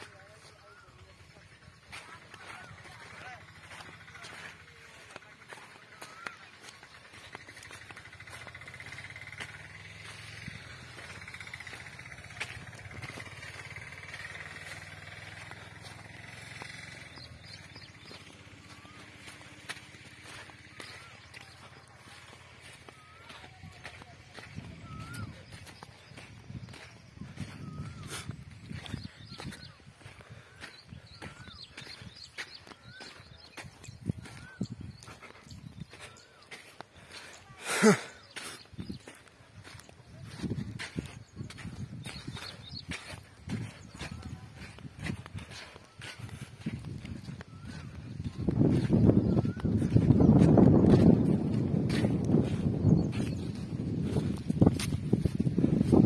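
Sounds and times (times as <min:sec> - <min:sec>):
bird chirps: 0:00.0 - 0:56.0
bird whistling call: 0:34.2 - 0:34.7.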